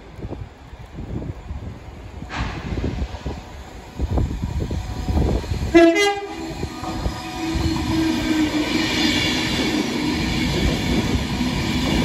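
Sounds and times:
electric train rumble: 0.0s - 12.0s
gusty wind on microphone: 0.0s - 12.0s.

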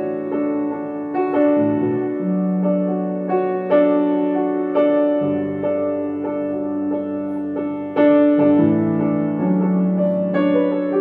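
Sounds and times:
solo piano: 0.0s - 11.0s.

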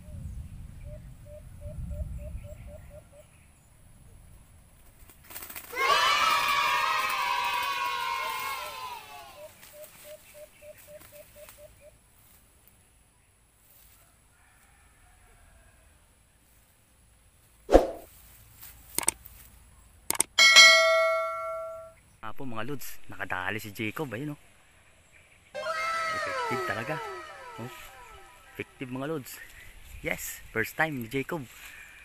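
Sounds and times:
sharp clicks: 18.9s - 19.2s, 20.1s - 20.4s
bell-like ding: 20.4s - 21.9s
falling pitch sound effect: 25.6s - 28.6s.

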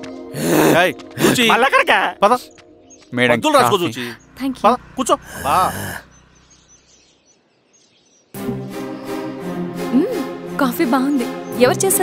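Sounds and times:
film background music: 0.0s - 5.2s, 8.4s - 12.0s
birds chirping: 0.0s - 12.0s.

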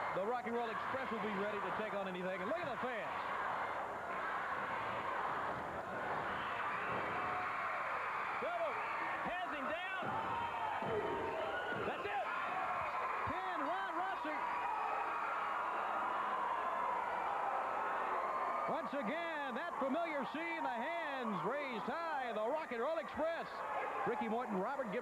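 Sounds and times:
crowd cheering and screaming: 0.0s - 22.0s.

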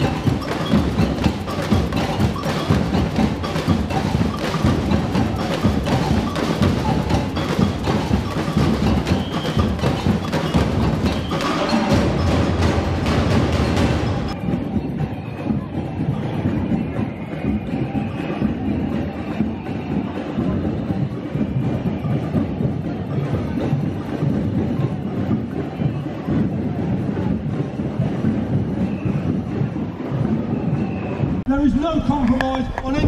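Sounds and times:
protest crowd rumble: 0.0s - 33.0s.

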